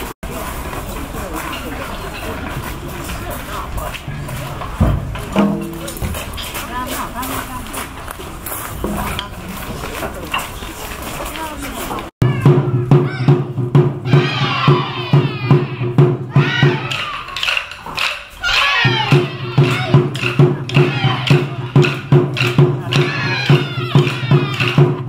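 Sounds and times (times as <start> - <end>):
low chatter: 0.0 - 25.0
taiko drumming: 4.0 - 6.3, 12.2 - 25.0
voices shouting: 12.2 - 25.0.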